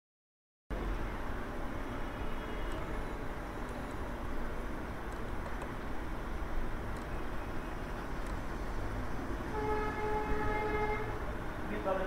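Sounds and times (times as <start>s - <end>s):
horn sounding steady note: 9.5s - 11.3s.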